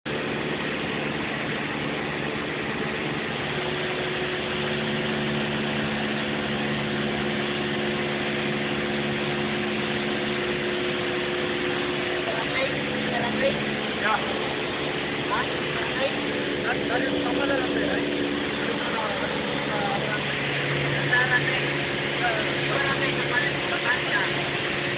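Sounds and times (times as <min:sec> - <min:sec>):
airplane engine drone in cockpit: 0:00.0 - 0:24.9.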